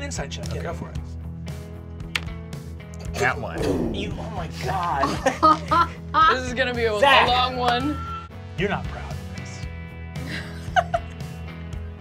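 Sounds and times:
held bass notes: 0:03.4 - 0:04.5.

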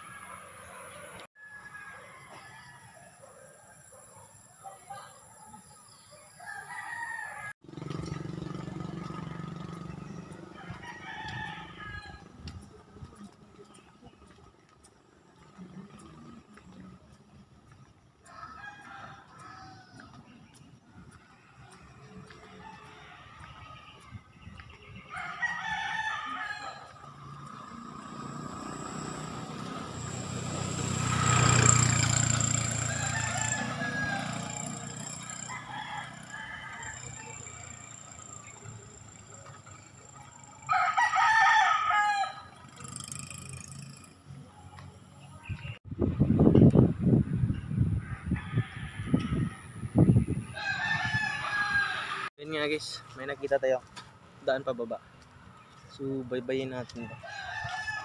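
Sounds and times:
roosters crowing: 0:00.0 - 0:04.1, 0:05.1 - 0:12.4, 0:17.7 - 0:44.4, 0:47.5 - 0:52.3, 0:56.6 - 0:58.0
vehicle passing: 0:07.6 - 0:25.1, 0:25.7 - 0:47.3.

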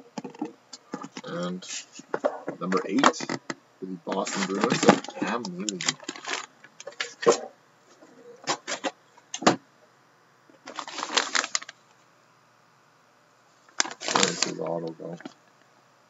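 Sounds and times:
plastic bag crinkling: 0:04.2 - 0:07.3, 0:10.6 - 0:11.8, 0:13.8 - 0:15.4.

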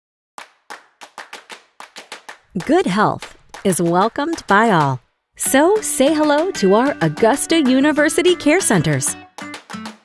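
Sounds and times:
rhythmic handclaps: 0:00.4 - 0:08.0, 0:08.8 - 0:10.0.

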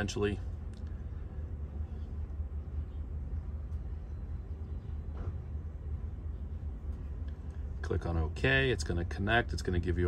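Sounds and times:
low rumble in truck cab: 0:00.0 - 0:10.0.

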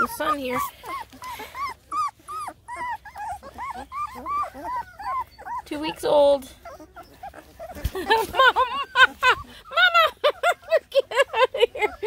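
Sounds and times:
puppies whimpering: 0:00.0 - 0:12.0.

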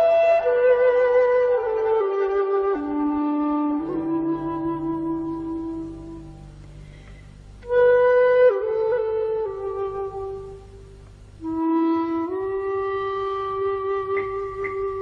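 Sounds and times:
solo flute music: 0:00.0 - 0:15.0.

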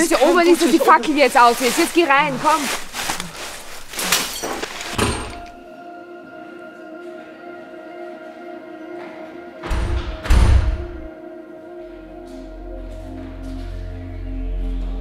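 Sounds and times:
ambient music drone: 0:00.0 - 0:15.0.

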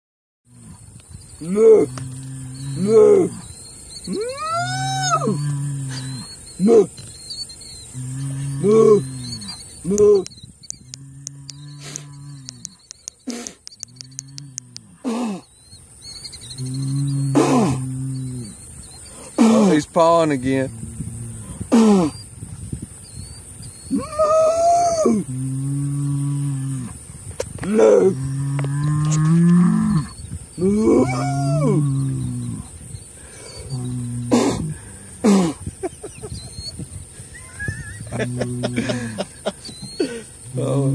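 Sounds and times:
long bellowing call: 0:01.4 - 0:07.0, 0:07.8 - 0:15.5, 0:23.8 - 0:27.0, 0:27.6 - 0:40.9.

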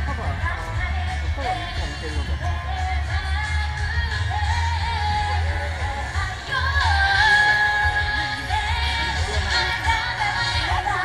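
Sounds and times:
woman singing pop song: 0:00.0 - 0:11.0.

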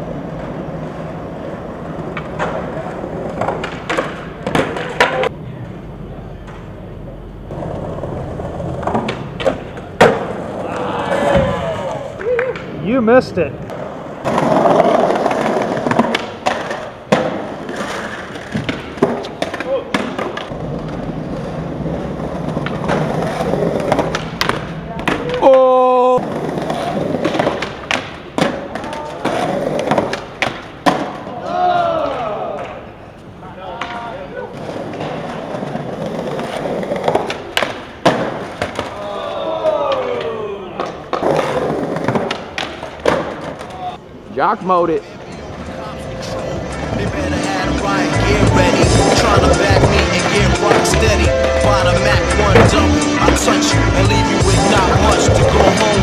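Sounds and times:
skateboard rolling on concrete: 0:00.0 - 0:56.0
skateboard pops and landings: 0:03.3 - 0:05.3, 0:08.7 - 0:12.7, 0:13.7 - 0:21.1, 0:26.6 - 0:31.3, 0:37.0 - 0:39.0, 0:39.8 - 0:43.8.

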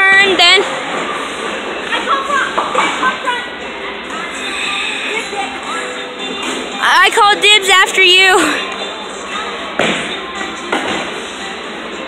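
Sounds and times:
people talking: 0:06.8 - 0:08.6.

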